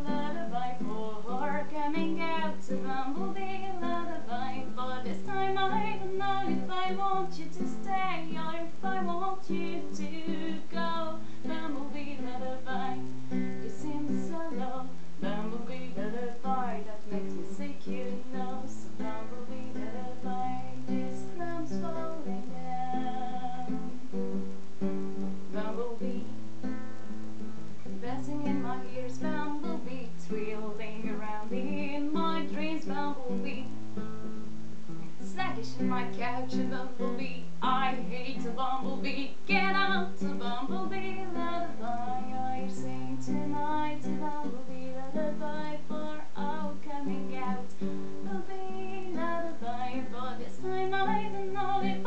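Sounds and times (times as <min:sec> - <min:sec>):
woman singing wordlessly: 0:00.0 - 0:24.1, 0:25.4 - 0:26.8, 0:27.8 - 0:33.7, 0:35.2 - 0:52.0
classical guitar playing: 0:00.0 - 0:52.0.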